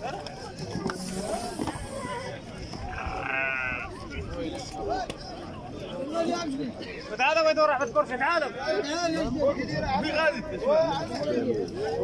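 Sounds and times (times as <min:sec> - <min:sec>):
men talking: 0:03.0 - 0:12.0.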